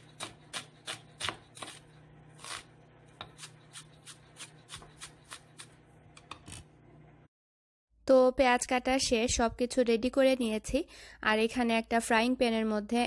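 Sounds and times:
knife slicing onion on board: 0.0s - 6.7s.

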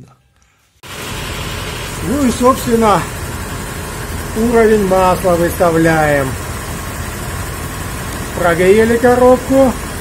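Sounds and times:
car engine idling: 0.8s - 10.0s.

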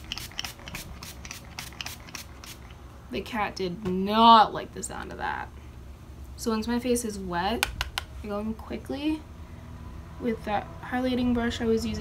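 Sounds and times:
spray bottle hissing spritzes: 0.0s - 2.7s.

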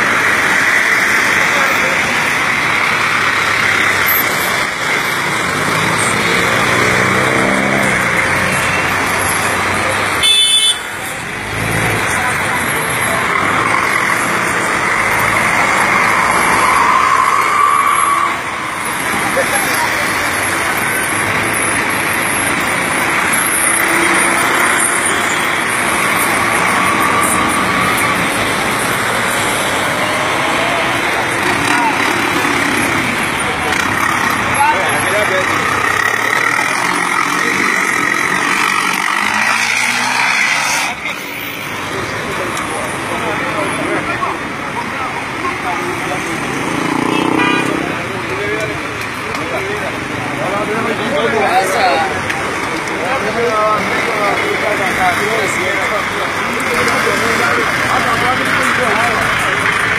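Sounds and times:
crowd talking and calling: 0.0s - 59.9s
minibus engines: 0.0s - 59.9s.

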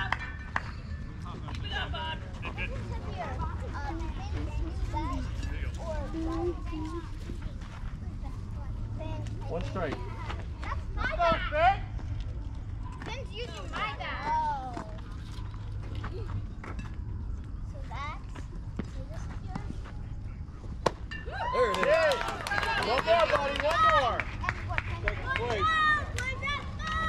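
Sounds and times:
voices shouting and calling out: 8.0s - 15.4s, 21.1s - 27.0s.

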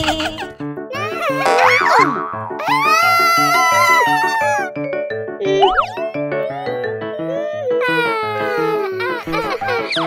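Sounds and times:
cartoon music with bouncing beat: 1.0s - 7.7s
cartoon sound effects gliding: 1.3s - 4.2s.

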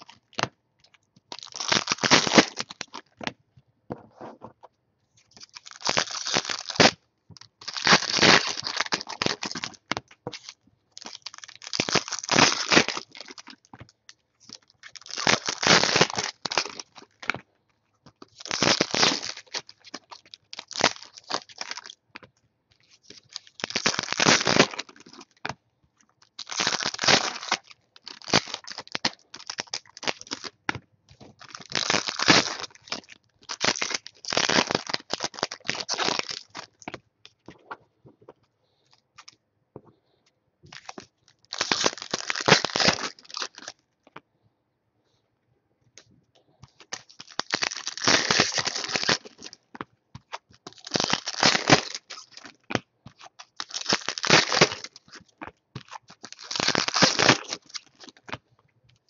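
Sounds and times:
card pack wrappers tearing and crinkling: 1.3s - 3.1s, 5.3s - 13.7s, 14.5s - 17.4s, 18.2s - 22.0s, 22.9s - 25.4s, 26.2s - 30.6s, 31.2s - 37.0s, 40.7s - 43.8s, 46.7s - 49.6s, 50.3s - 58.4s.

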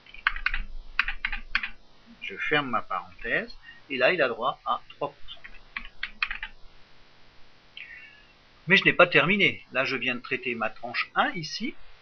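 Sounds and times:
computer keyboard typing: 0.0s - 1.8s, 5.4s - 6.6s.

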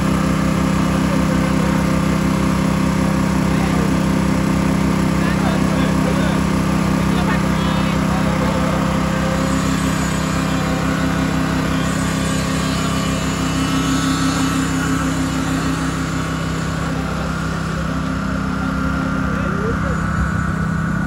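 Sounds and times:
engine running steadily: 0.0s - 21.0s.

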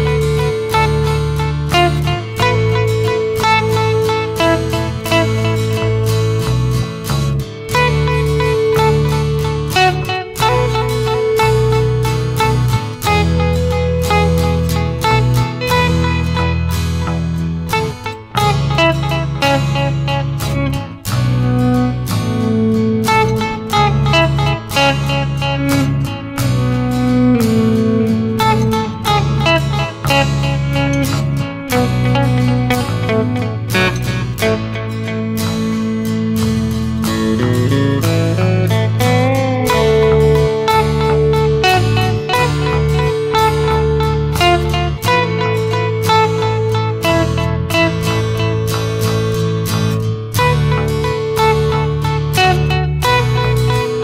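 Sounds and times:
electric guitar playing: 0.0s - 54.0s
sustained bass part: 0.0s - 54.0s.

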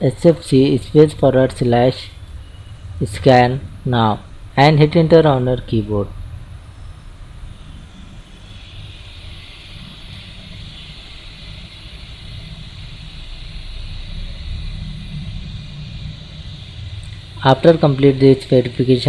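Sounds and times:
hiss: 6.7s - 19.0s.

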